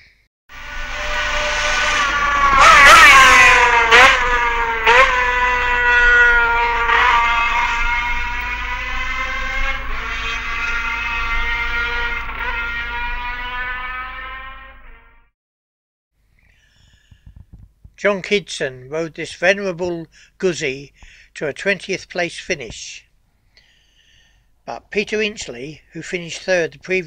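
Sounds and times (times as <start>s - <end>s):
racing motorcycle engine revving: 0.5s - 15.3s.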